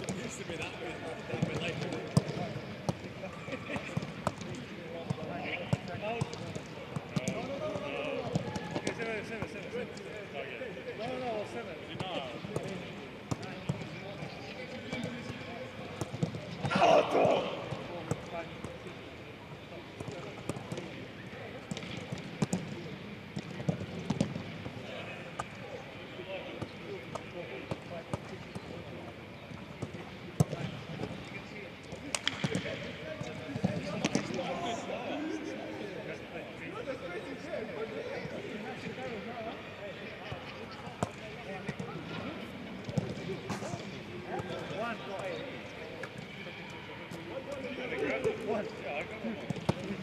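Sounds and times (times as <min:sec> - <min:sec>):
players calling out: 0:16.6 - 0:19.0.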